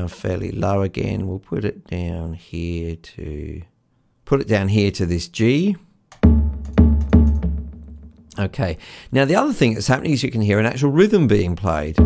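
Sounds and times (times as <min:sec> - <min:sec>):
deep tabla strikes and taps: 0:06.2 - 0:08.2.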